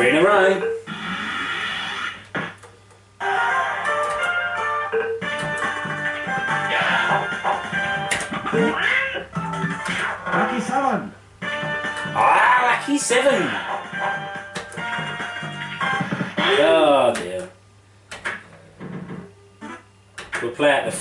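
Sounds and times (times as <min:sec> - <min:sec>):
fruit machine electronic tunes: 0:03.2 - 0:10.3, 0:13.9 - 0:16.4.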